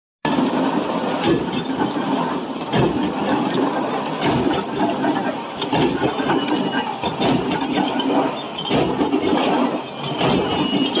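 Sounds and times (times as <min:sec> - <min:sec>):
factory machinery din: 0:00.3 - 0:11.0
steel chain clanking: 0:01.2 - 0:11.0.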